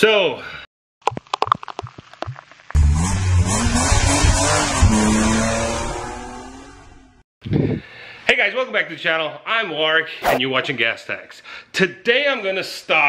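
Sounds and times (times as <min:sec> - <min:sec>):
car engine revving: 0:02.8 - 0:07.1.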